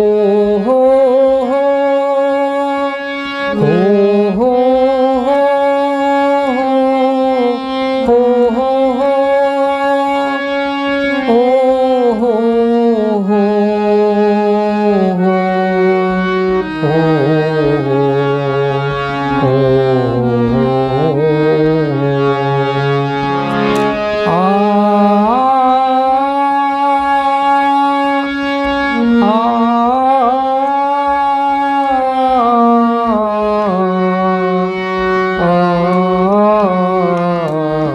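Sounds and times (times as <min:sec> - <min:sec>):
man singing wordless vowel: 0:00.0 - 0:22.7, 0:24.2 - 0:37.9
harmonium: 0:00.0 - 0:37.9.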